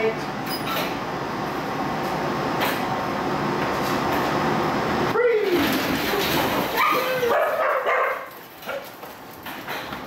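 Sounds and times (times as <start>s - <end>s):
dogs yipping and barking: 6.7s - 8.9s.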